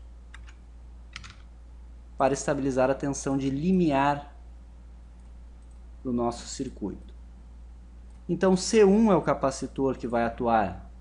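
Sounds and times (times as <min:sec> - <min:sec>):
steady low hum: 0:00.0 - 0:11.0
computer keyboard keystrokes: 0:00.3 - 0:01.5.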